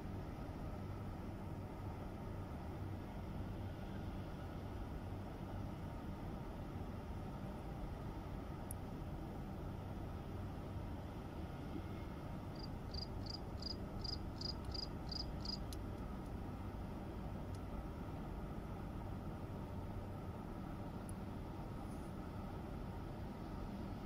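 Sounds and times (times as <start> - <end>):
low background rumble: 0.0 - 24.0
cricket chirping: 12.5 - 15.6.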